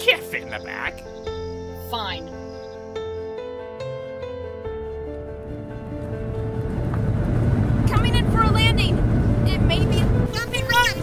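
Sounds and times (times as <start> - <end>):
background music: 0.0 - 11.0
flying ship engine rumbling: 0.3 - 11.0.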